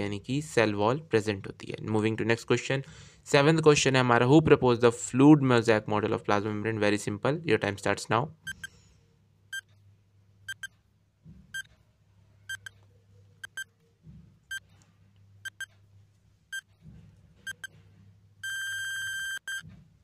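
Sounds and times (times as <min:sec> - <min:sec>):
long continuous beep: 0:18.4 - 0:19.7.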